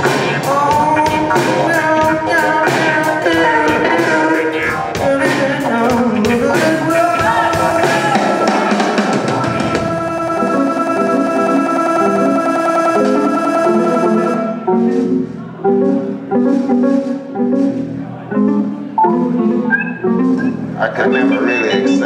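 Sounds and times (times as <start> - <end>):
live band playing: 0.0 - 22.0.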